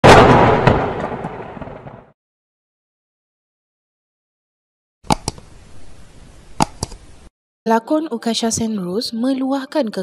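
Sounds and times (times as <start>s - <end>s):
loud blast-like impact: 0.0s - 2.1s
sharp crack: 0.0s - 2.1s, 5.0s - 5.4s, 6.6s - 7.0s.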